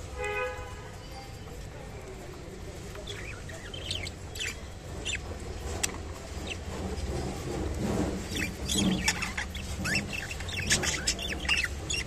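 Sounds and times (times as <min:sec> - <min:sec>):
budgerigars chirping: 0:03.0 - 0:05.4, 0:08.2 - 0:12.0.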